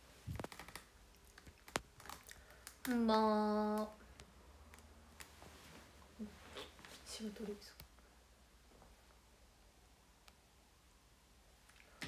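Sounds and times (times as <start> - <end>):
woman speaking: 2.9 - 4.0, 6.2 - 7.8.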